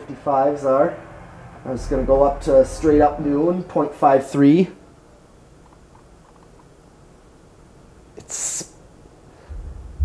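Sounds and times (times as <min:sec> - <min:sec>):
ceiling fan whooshing: 0:00.0 - 0:06.6, 0:09.2 - 0:10.0.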